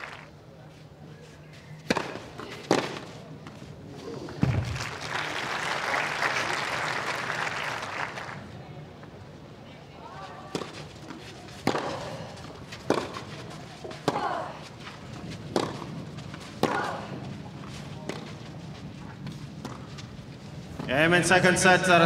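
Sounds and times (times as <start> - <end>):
tennis ball hit by racket: 1.9 - 3.2, 10.5 - 14.3, 15.5 - 17.0.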